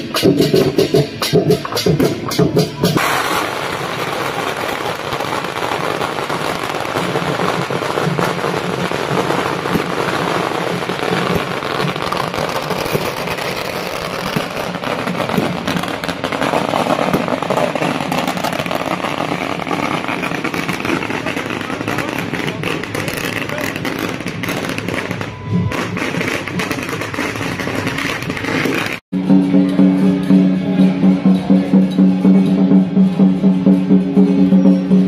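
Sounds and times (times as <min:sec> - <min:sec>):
firecrackers crackling: 0:00.0 - 0:31.0.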